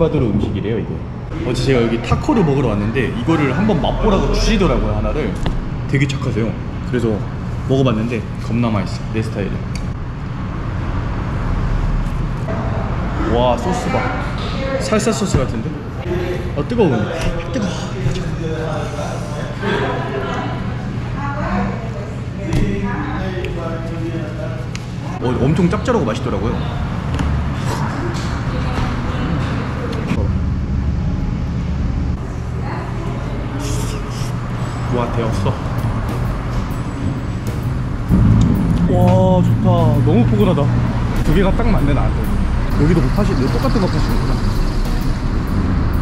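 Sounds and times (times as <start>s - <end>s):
low rumble of road traffic: 0.0s - 46.0s.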